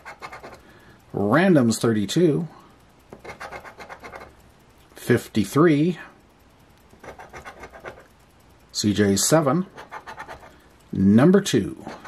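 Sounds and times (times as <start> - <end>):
scratching lottery ticket coating: 0.0 - 0.6, 3.2 - 4.4, 6.9 - 8.1, 9.2 - 11.1.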